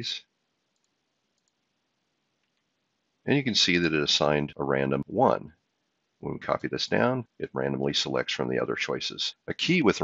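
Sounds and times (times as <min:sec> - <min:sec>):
very faint clicks: 0:00.6 - 0:01.8, 0:02.4 - 0:02.9.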